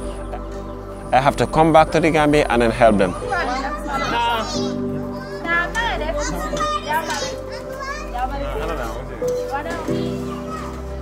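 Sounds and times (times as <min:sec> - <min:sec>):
background music sustained tones: 0:00.0 - 0:11.0
children shouting at play: 0:02.8 - 0:11.0.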